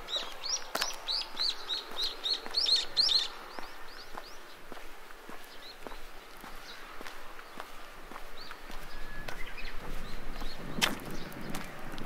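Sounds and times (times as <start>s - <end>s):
small bird singing: 0.0s - 11.8s
faint footsteps: 0.0s - 12.0s.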